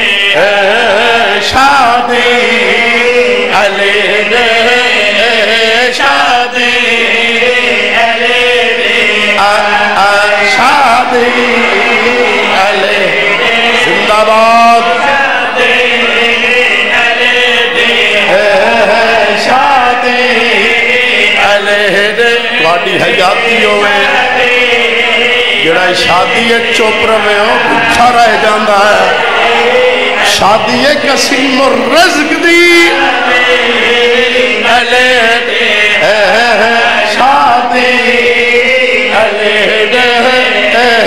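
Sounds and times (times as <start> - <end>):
crowd of men chanting: 0.0 - 41.0.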